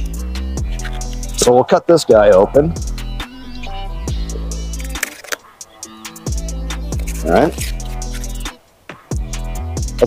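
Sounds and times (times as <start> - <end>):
electronic music: 0.0 - 8.6
deep held bass: 2.1 - 5.0.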